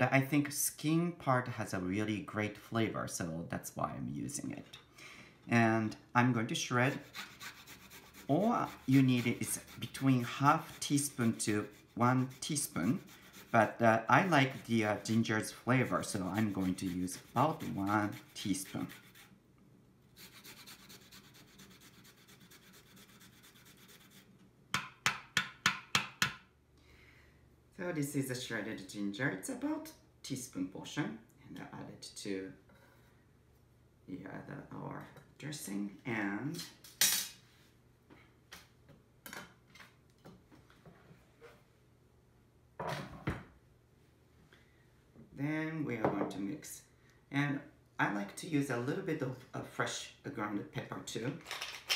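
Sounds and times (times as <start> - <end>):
ginger grated on rasp: 6.8 - 19.3
kitchen utensils clicking and scraping: 51.4 - 51.9.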